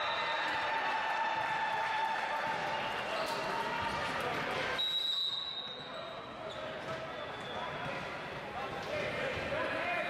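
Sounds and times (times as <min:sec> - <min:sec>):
referee's whistle: 0:00.0 - 0:00.5, 0:04.8 - 0:07.8
voices in echoing gym: 0:02.3 - 0:10.0.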